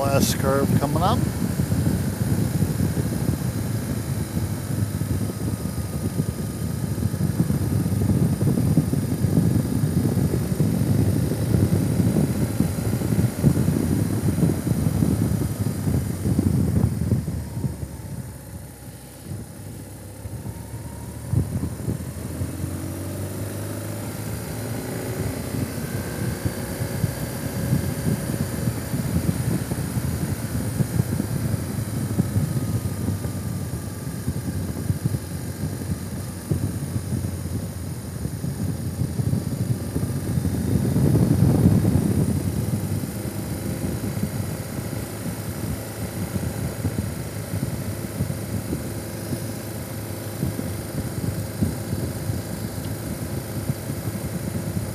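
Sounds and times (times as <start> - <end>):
vehicle rumble: 0.0 - 54.9
faint engine tone: 13.6 - 39.0.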